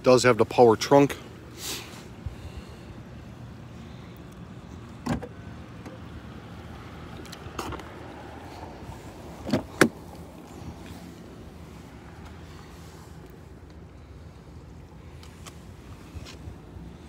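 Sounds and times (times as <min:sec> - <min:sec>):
car body clicks and knocks: 0:05.0 - 0:06.0, 0:09.4 - 0:10.2
car door opening clunk: 0:05.0 - 0:06.0, 0:09.4 - 0:10.2.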